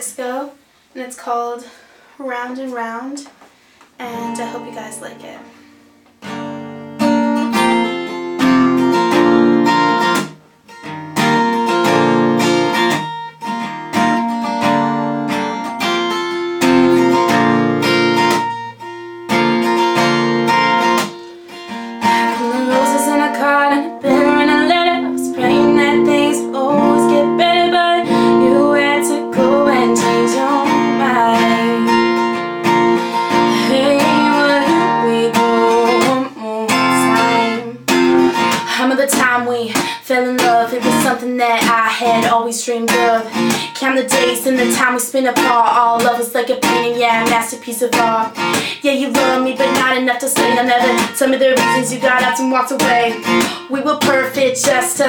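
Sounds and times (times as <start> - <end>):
woman singing: 4.0 - 5.5, 22.0 - 55.0
acoustic guitar strumming: 4.0 - 55.0.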